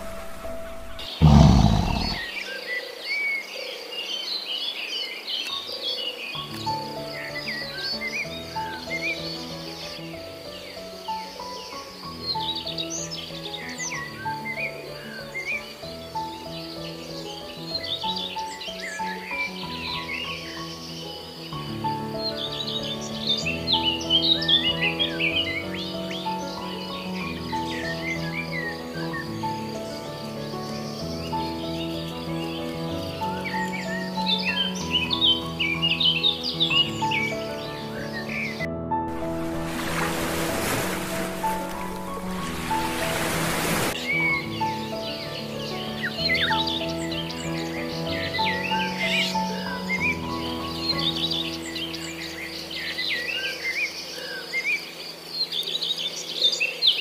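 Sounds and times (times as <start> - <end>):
small birds chirping: 0.0 - 38.7, 39.4 - 57.0
gentle background music: 0.0 - 57.0.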